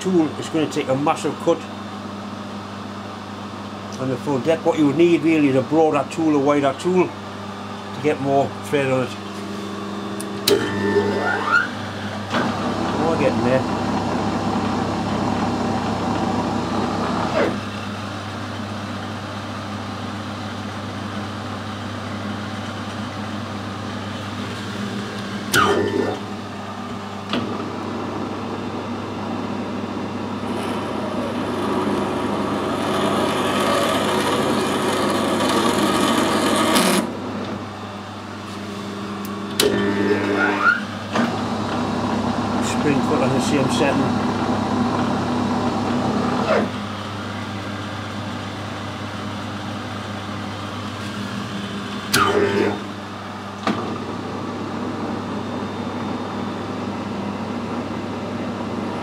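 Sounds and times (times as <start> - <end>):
lathe motor hum: 9.1 - 18.2, 24.0 - 38.3, 38.9 - 49.3
lathe tool cutting metal: 30.4 - 37.1.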